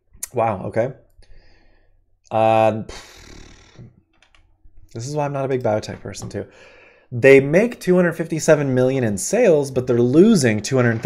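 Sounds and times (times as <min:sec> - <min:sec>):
breathy noise: 0:02.9 - 0:03.9.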